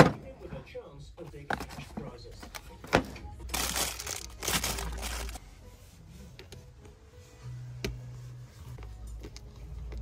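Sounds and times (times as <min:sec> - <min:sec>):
goods rustling and crinkling: 0:01.3 - 0:10.0.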